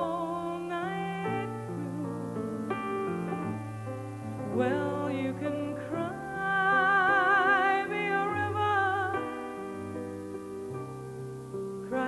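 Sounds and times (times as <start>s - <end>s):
woman singing ballad: 0.0s - 2.7s, 4.4s - 9.8s.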